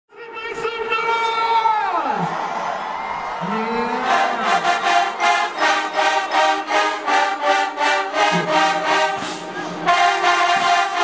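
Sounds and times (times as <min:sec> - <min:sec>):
brass section holding a chord: 0:04.0 - 0:11.0.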